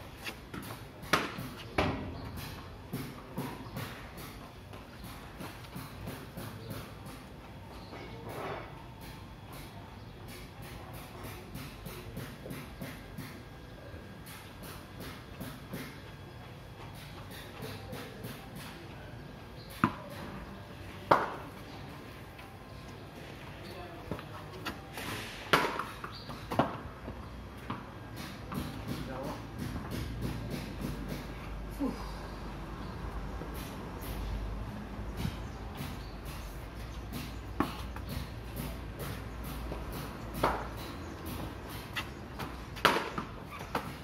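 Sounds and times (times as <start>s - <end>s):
cricket ball knocks on pavement: 42.4s - 43.9s.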